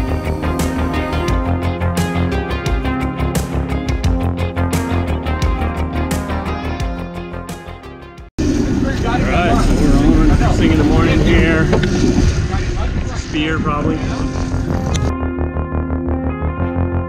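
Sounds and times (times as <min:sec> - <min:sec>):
background music: 0:00.0 - 0:17.0
boat engine: 0:08.4 - 0:15.1.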